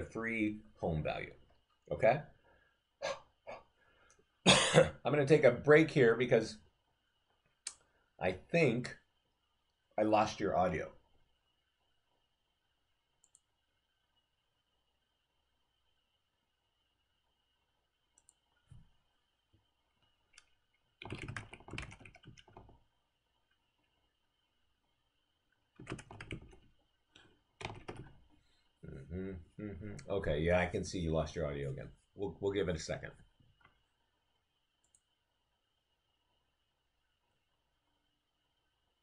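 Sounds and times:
computer keyboard typing: 20.3s - 22.8s, 25.8s - 26.7s, 27.6s - 28.2s.

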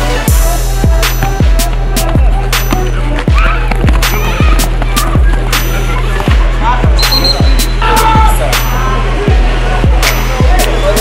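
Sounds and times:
deep kick drum: 0.3s - 5.5s.

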